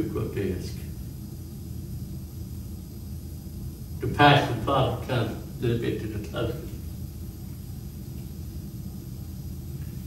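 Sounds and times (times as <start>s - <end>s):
faint hiss: 0.0s - 10.0s
low background hum: 0.0s - 10.0s.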